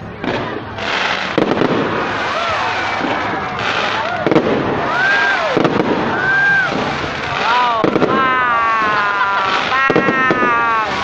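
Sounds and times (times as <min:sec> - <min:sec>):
fireworks crackling and popping: 0:00.0 - 0:11.0.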